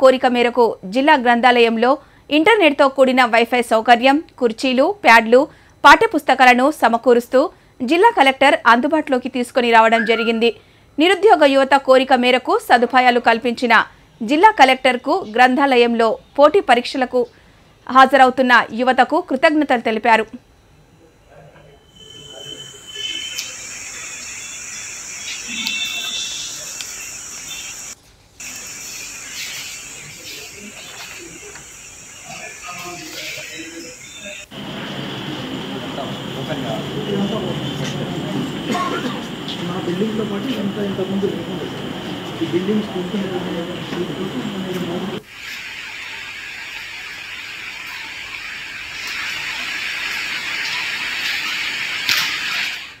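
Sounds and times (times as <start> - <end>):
high-pitched hiss: 21.5 - 53.0.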